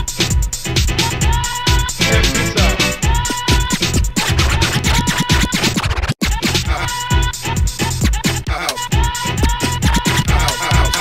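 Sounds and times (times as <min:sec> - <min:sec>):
house music: 0:00.0 - 0:11.0
turntable scratching: 0:00.0 - 0:11.0.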